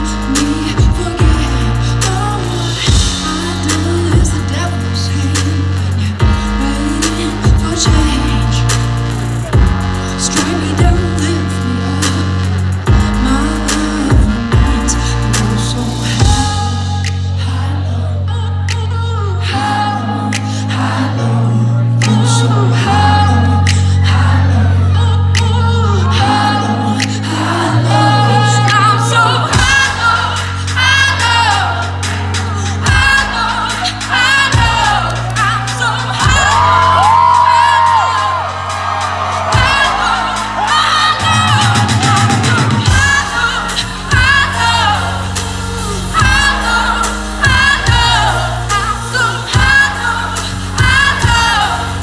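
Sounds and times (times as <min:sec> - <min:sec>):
live pop band playing: 0:00.0 - 0:52.0
woman singing: 0:00.0 - 0:52.0.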